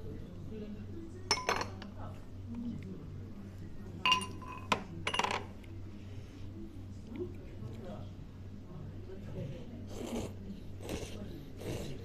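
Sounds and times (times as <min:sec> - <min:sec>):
low steady hum: 0:00.0 - 0:12.0
ceramic dish clattering: 0:01.3 - 0:01.9, 0:04.1 - 0:05.5.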